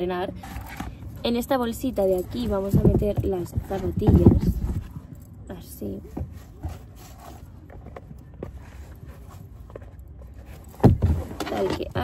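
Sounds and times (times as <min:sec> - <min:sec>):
bag rustling: 0:00.3 - 0:12.0.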